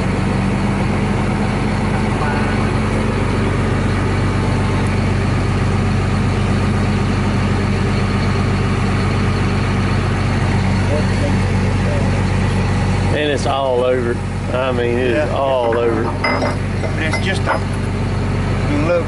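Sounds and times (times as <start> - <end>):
diesel engine idling: 0.0 - 19.0.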